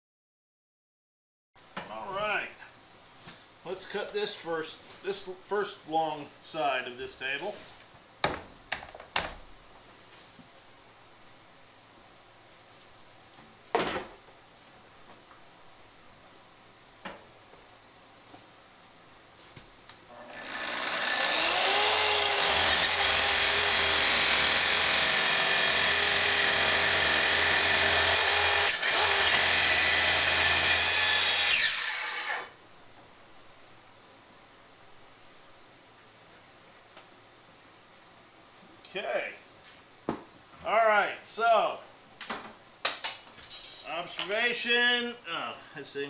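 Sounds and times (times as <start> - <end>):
saw motor whining: 20.1 - 32.6.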